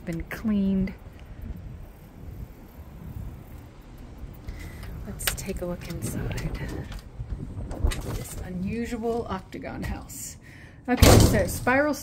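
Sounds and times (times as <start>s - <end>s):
wind rumble on microphone: 0.0s - 10.1s.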